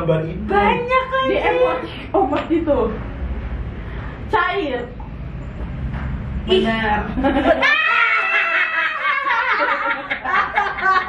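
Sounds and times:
women laughing and cheering: 7.2 - 11.0.

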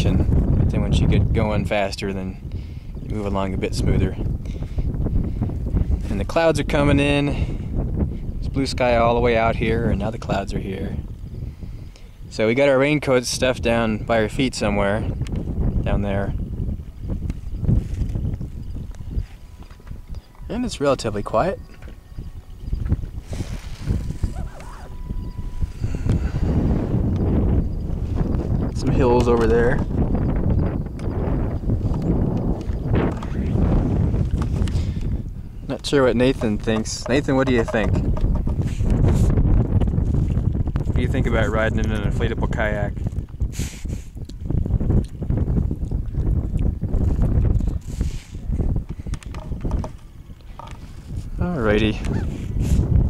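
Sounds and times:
wind buffeting microphone: 0.0 - 53.0
camera handling knocks: 36.8 - 38.6, 49.1 - 50.0.

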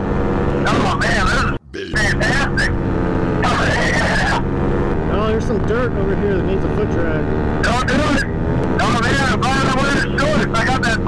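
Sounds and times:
paramotor engine and propeller drone: 0.0 - 11.0
rising and falling cry: 3.4 - 4.6.

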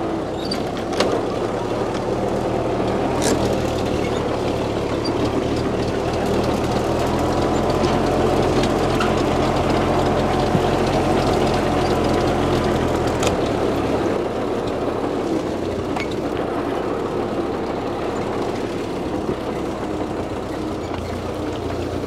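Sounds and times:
tractor engine running: 0.0 - 22.0.

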